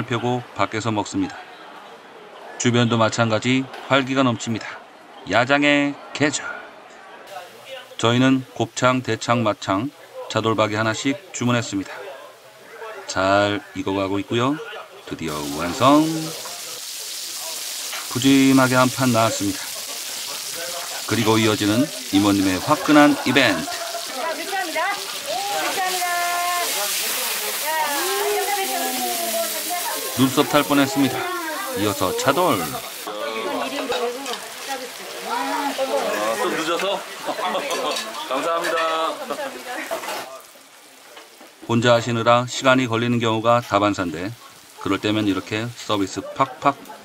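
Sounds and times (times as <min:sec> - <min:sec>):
speech: 0:00.0 - 0:01.5, 0:17.4 - 0:19.7, 0:20.5 - 0:40.5, 0:41.7 - 0:47.0
food sizzling in a hot pan: 0:07.3 - 0:08.9, 0:15.2 - 0:46.9.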